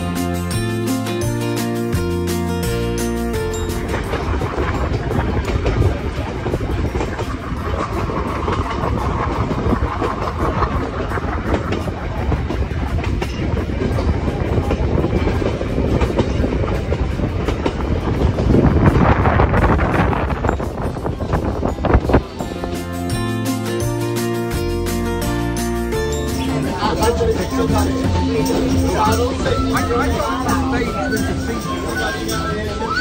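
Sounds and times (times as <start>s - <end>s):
train rumbling on rails: 0.0s - 33.0s.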